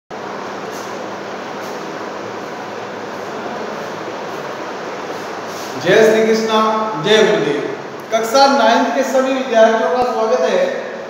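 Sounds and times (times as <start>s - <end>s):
steady background hiss: 0.2s - 11.0s.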